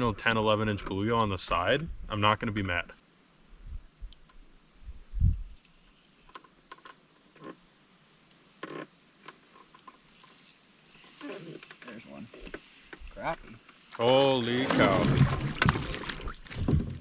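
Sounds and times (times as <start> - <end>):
fishing reel clicking: 10.1 - 14.4
dull low thump: 16.5 - 17.0.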